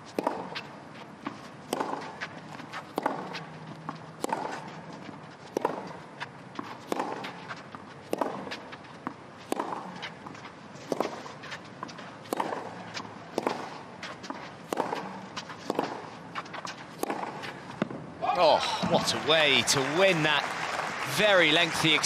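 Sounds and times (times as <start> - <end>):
tennis ball hit with racquets: 0.0 - 18.0.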